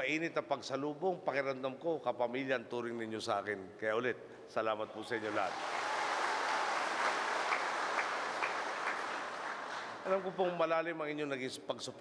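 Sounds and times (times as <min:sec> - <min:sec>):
audience applauding: 0:05.2 - 0:10.3.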